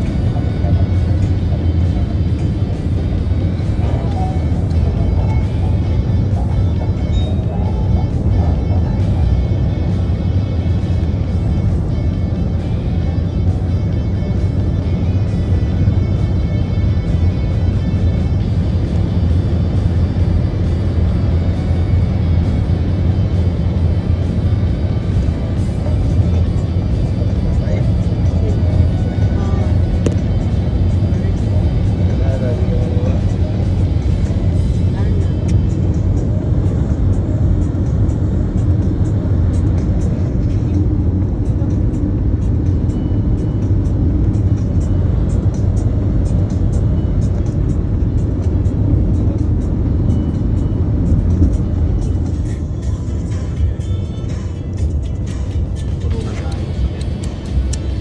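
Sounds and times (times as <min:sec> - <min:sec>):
car road and engine rumble: 0:00.0 - 0:58.0
music with singing: 0:00.0 - 0:58.0.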